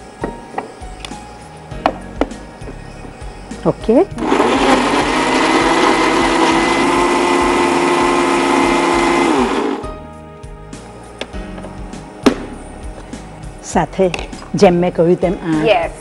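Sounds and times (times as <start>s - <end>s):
mixer grinder running: 4.1s - 9.8s
motor winding down: 4.2s - 9.8s.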